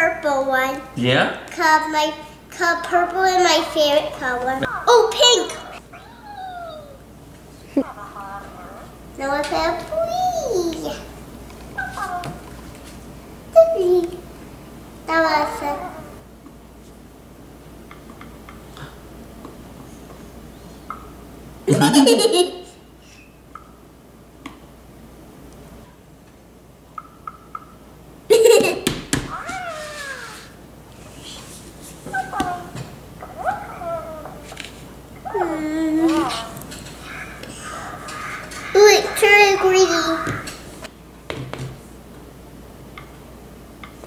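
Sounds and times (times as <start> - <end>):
electronic toy animal call: 29.3 - 30.5.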